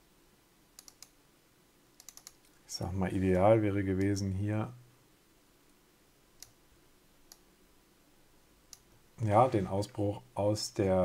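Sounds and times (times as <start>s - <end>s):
faint computer mouse clicks: 0.8s - 1.2s, 2.0s - 2.6s, 6.4s - 6.6s, 8.7s - 8.9s.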